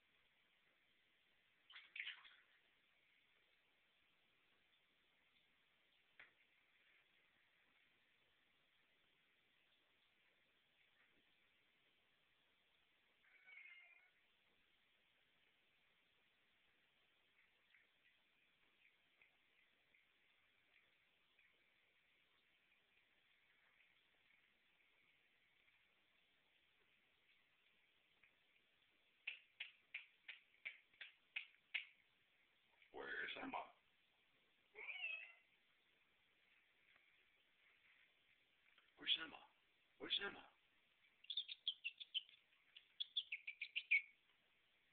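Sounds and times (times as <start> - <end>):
cat meowing: 13.3 - 14.2, 34.7 - 35.5.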